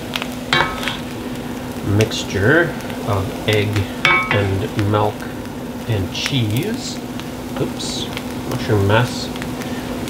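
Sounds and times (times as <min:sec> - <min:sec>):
mushrooms sizzling in a skillet: 0:00.0 - 0:10.0.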